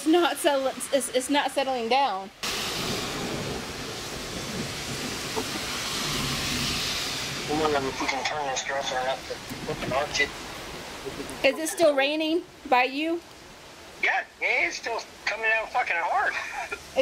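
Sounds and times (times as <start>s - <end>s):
heavy rain: 0.0s - 17.0s
faint voices: 7.4s - 10.4s.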